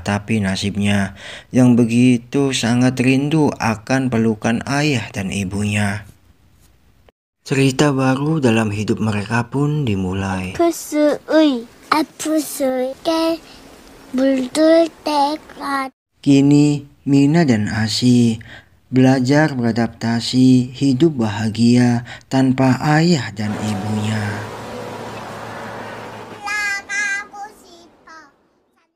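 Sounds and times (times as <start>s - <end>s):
child singing in a high voice: 26.4s - 28.9s.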